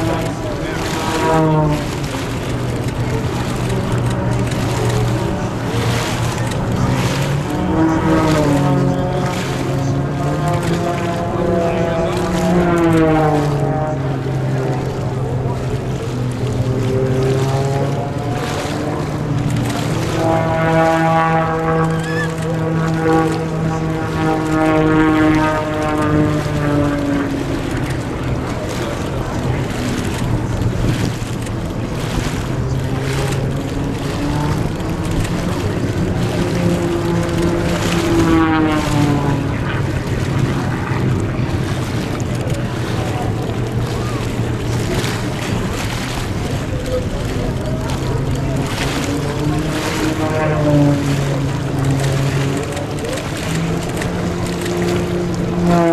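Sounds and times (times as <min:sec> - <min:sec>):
propeller plane engine droning: 0:00.0 - 0:55.9.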